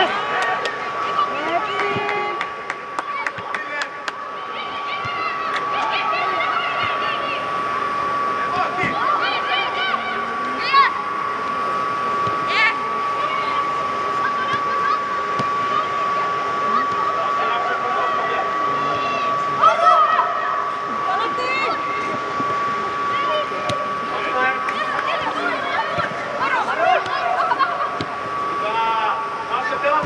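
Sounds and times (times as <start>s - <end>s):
players calling and shouting: 0.0s - 30.0s
steady high-pitched hum: 0.0s - 30.0s.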